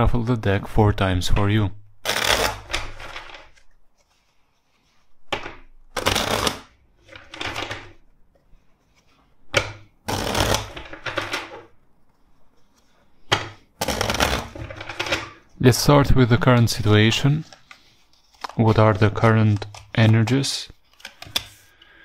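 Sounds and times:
cards being shuffled: 0:01.4 - 0:15.5, 0:16.7 - 0:21.7.

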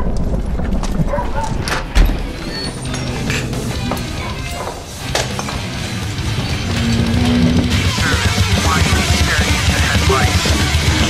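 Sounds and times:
horse hooves on cobblestones: 0:00.0 - 0:11.0
street noise rumble: 0:00.0 - 0:11.0
indistinct voices: 0:01.4 - 0:11.0.

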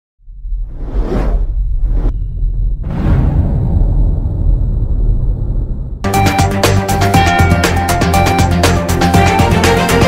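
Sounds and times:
deep rumble: 0:00.2 - 0:06.1.

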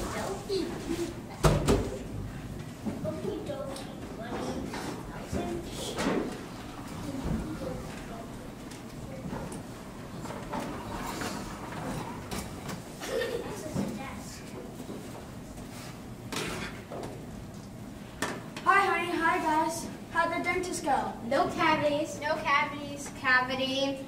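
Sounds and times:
low murmuring voices: 0:02.8 - 0:14.8.

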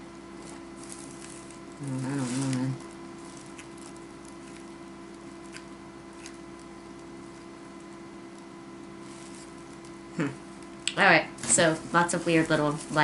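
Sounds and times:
steady hum: 0:00.0 - 0:13.0.

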